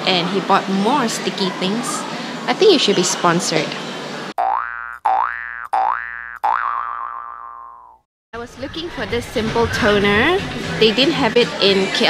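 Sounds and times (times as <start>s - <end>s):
cartoon spring boing: 4.4s - 8.0s.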